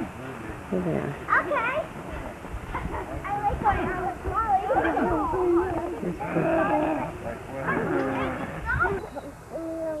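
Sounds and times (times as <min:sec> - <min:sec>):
children laughing and calling out: 0:02.7 - 0:10.0.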